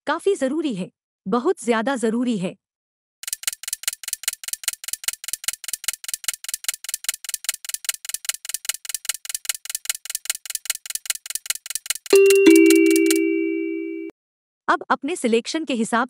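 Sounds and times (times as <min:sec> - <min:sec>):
rapid clock ticking: 0:03.2 - 0:13.2.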